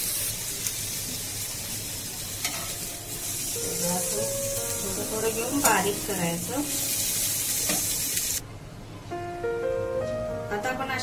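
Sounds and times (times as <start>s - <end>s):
food sizzling in hot oil: 0.0s - 8.4s.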